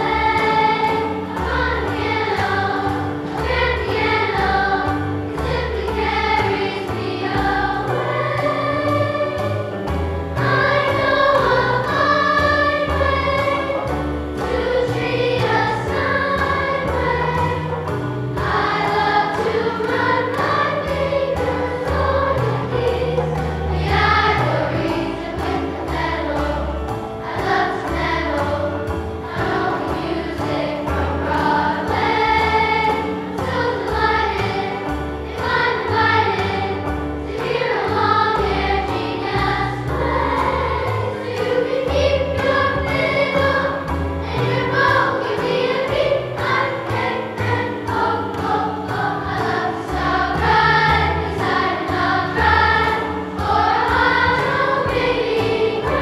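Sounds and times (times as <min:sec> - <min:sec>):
children's choir singing: 0:00.0 - 0:56.0
instrumental accompaniment with beat: 0:00.0 - 0:56.0.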